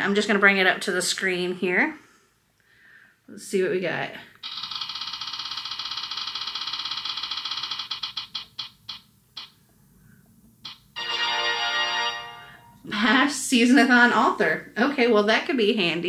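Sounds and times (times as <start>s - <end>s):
spinning wheel ticks: 4.4s - 9.6s.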